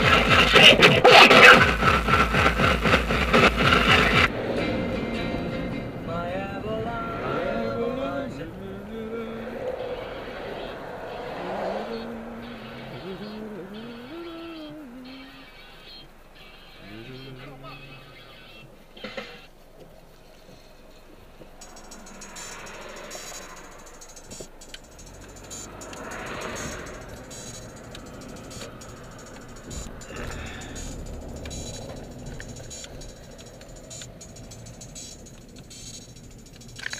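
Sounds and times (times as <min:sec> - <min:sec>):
car cabin noise: 0:00.0 - 0:36.9.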